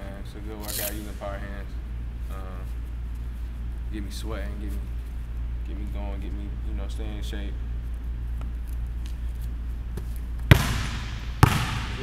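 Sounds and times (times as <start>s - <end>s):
steady low hum: 0.0s - 12.0s
basketball bouncing on hardwood: 10.0s - 12.0s.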